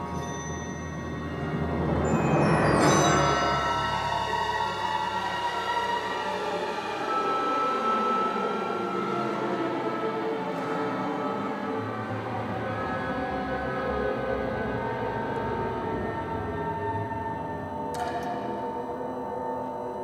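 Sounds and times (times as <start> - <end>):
orchestra playing sustained tones: 0.0 - 19.0.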